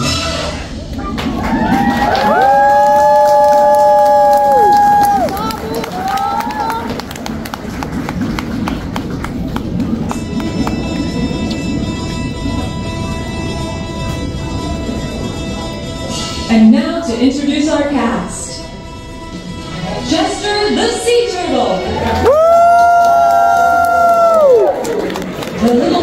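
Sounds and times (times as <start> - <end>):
audience applause and cheering: 0.7 - 15.0, 21.7 - 26.0
show music held chord: 9.7 - 21.6.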